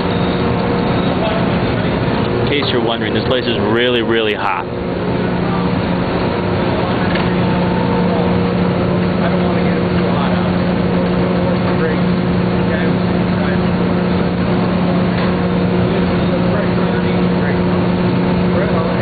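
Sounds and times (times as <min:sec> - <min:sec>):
machinery low hum: 0:00.0 - 0:19.0
machinery roar: 0:00.0 - 0:19.0.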